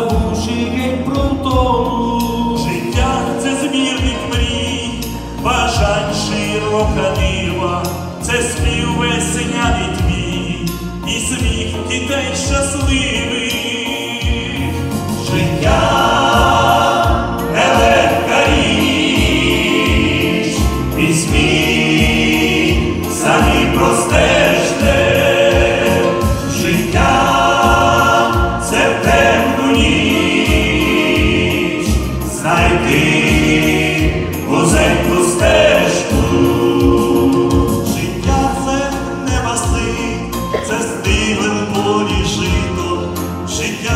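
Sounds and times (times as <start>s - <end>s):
accompaniment with steady beat: 0.0s - 43.9s
male choir singing in harmony: 0.0s - 43.9s.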